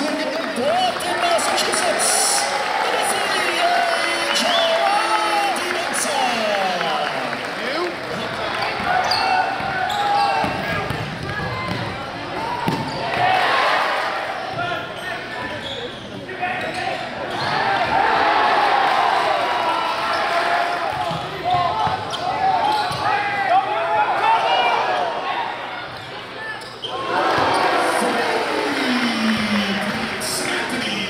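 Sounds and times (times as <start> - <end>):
voices echoing in a hall: 0.0 - 31.0
sneakers squeaking: 8.1 - 12.0, 12.6 - 13.2, 14.4 - 17.9, 20.9 - 23.4, 25.8 - 27.8
basketball bouncing: 10.4 - 11.9.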